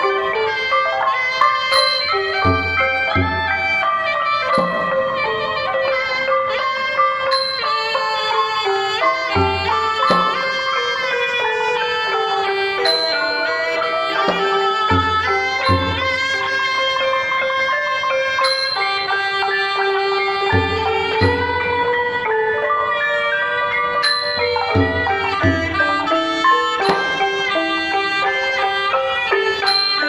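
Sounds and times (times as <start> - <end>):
reed pipe melody: 0.0 - 30.0
wooden xylophone: 0.0 - 30.0
gong circles: 1.7 - 6.0, 9.0 - 10.8, 12.8 - 16.5.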